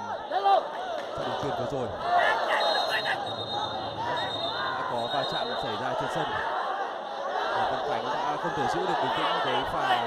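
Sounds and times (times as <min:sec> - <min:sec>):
stadium crowd shouting: 0:00.0 - 0:10.0.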